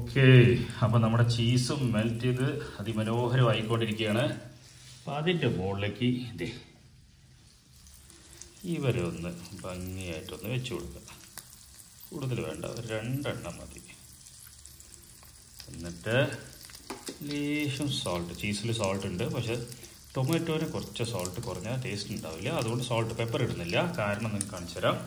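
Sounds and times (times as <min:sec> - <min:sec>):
man talking: 0:00.0 - 0:06.8, 0:08.6 - 0:11.2, 0:12.1 - 0:14.0, 0:15.6 - 0:16.6, 0:17.2 - 0:25.0
bread sizzling in a pan: 0:00.3 - 0:25.0.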